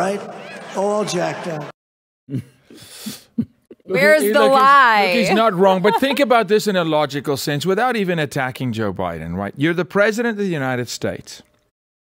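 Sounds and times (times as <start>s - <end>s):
people talking: 0.8s - 1.7s, 3.7s - 11.4s.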